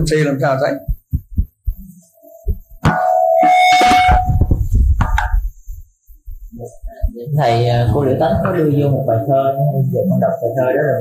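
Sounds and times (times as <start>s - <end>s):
microphone feedback ringing: 0.8s - 7.0s.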